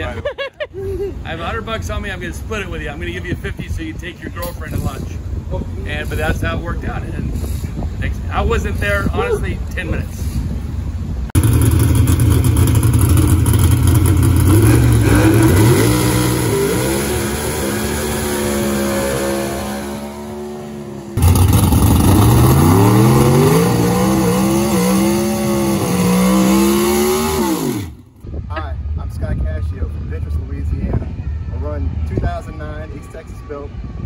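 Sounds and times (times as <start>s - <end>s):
drag car engine at full throttle: 11.4s - 28.2s.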